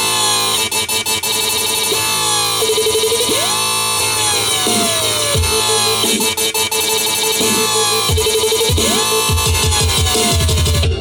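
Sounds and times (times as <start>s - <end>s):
synth bass: 0.0s - 11.0s.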